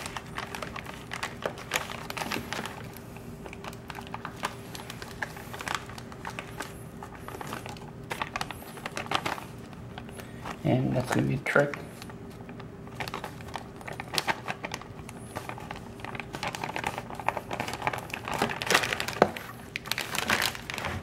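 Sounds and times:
plastic bag crinkling: 0:00.0 - 0:21.0.

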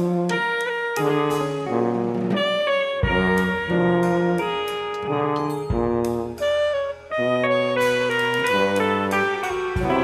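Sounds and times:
drums: 0:00.0 - 0:10.0
tenor saxophone: 0:00.0 - 0:10.0
tuba: 0:00.0 - 0:10.0.

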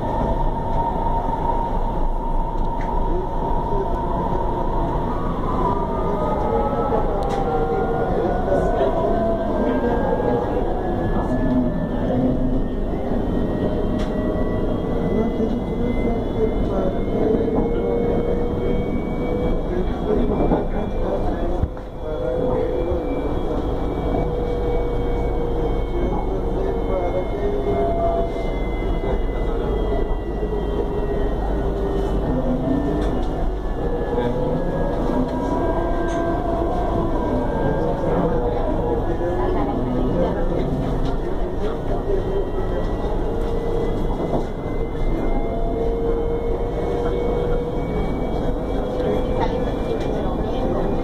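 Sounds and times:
passenger chatter: 0:00.0 - 0:51.0
train wheels rumbling on rails: 0:00.0 - 0:51.0.

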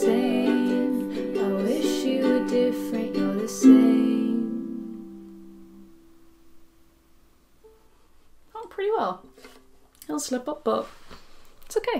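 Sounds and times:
ukulele chord ringing: 0:00.0 - 0:06.2.

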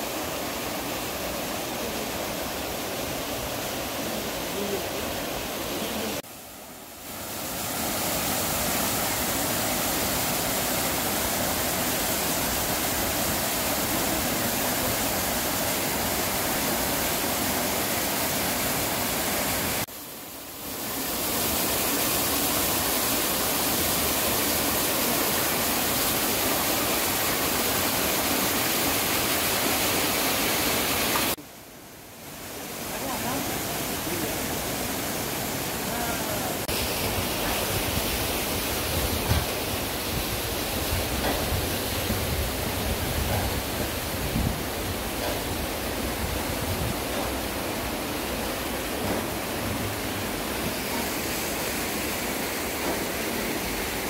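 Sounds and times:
waterfall and rushing stream: 0:00.0 - 0:54.0.

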